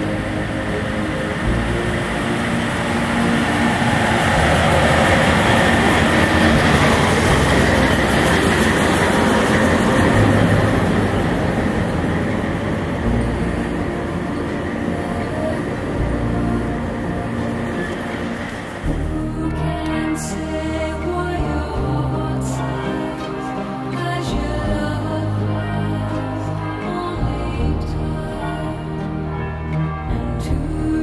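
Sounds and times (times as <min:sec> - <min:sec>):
train wheels rumbling on rails: 0:00.0 - 0:30.8
diesel locomotive engine running: 0:00.0 - 0:31.0.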